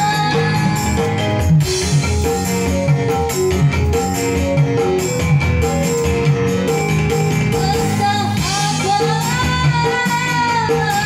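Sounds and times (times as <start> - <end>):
plucked guitar-like melody: 0.0 - 9.9
bass and drum beat: 0.0 - 11.0.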